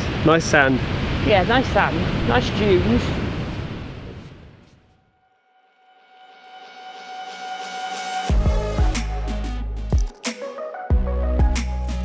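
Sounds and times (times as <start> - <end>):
surf: 0.0 - 4.6
wind: 0.0 - 5.0.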